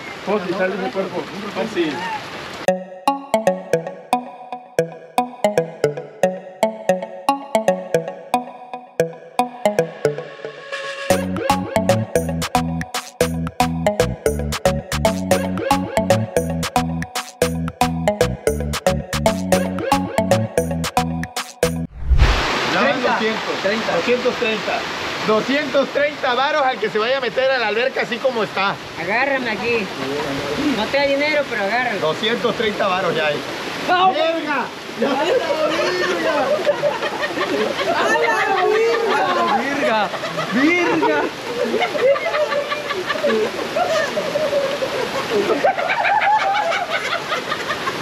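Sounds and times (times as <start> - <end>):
heavy rain pouring: 22.0 - 36.7
men talking: 22.7 - 44.6.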